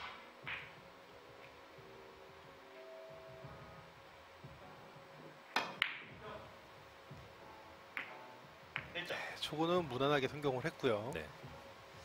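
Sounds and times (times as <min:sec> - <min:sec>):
billiard balls colliding: 0:00.0 - 0:00.8, 0:05.5 - 0:06.2, 0:08.0 - 0:09.0.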